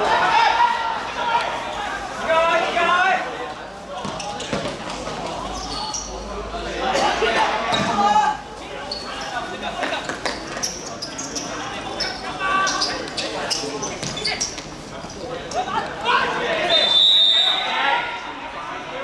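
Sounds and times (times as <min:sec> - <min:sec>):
players calling out: 0:00.0 - 0:19.0.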